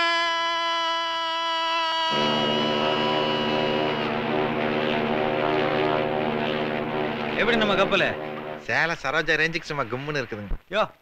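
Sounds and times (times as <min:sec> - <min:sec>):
low buzzy drone: 0:02.1 - 0:09.6.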